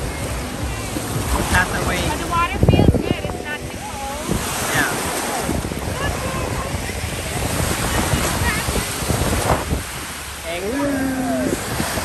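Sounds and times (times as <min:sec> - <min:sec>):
small waves breaking: 0:00.0 - 0:12.0
wind buffeting microphone: 0:00.0 - 0:12.0.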